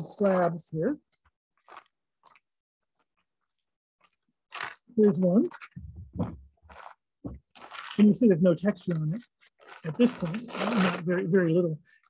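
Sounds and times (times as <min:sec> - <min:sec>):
plastic wrapping crinkling: 0:01.6 - 0:11.0.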